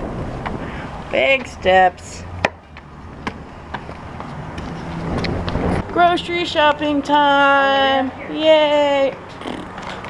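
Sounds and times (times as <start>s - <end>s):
wind on microphone: 0.0s - 1.7s, 2.9s - 7.0s.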